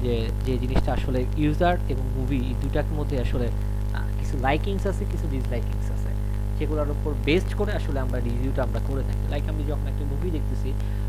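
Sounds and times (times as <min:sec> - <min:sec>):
person talking softly: 0:00.0 - 0:10.9
electrical mains hum: 0:00.0 - 0:11.0.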